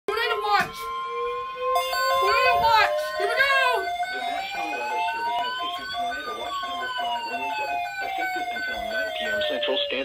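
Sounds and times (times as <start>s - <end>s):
rising siren-like tone: 0.1s - 10.0s
alternating high-low beeping: 1.2s - 10.0s.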